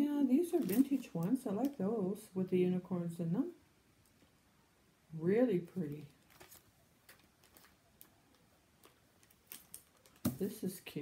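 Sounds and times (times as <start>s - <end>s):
plastic packets crinkling and clicking: 0.4s - 1.9s, 6.1s - 10.5s.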